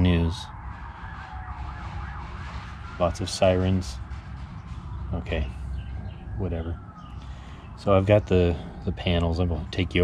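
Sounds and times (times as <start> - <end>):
emergency sirens wailing: 0.0 - 10.0
low rumble: 0.5 - 7.3.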